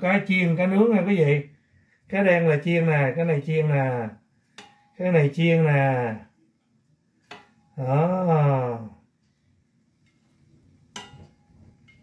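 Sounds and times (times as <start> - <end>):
chopsticks knocking on frying pan: 11.0 - 12.0.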